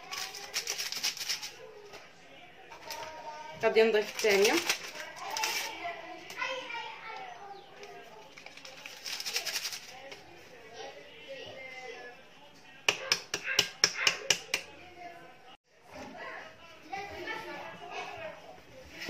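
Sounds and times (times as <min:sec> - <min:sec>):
children's voices: 0:04.9 - 0:08.2, 0:16.9 - 0:19.0.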